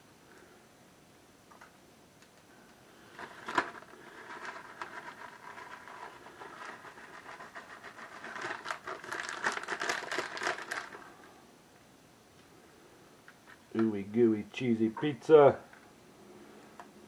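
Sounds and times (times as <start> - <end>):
plastic bag crinkling: 3.0 - 11.3.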